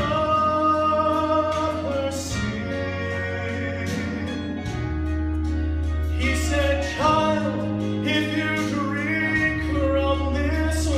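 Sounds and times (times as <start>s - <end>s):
man singing gospel into microphone: 0.0s - 4.9s, 6.1s - 10.9s
instrumental accompaniment: 0.0s - 10.9s.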